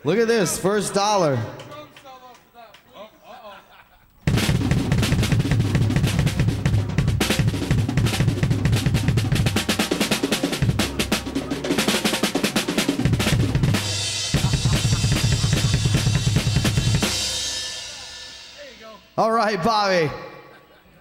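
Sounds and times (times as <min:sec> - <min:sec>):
rock drum kit playing fast: 0:04.2 - 0:19.2.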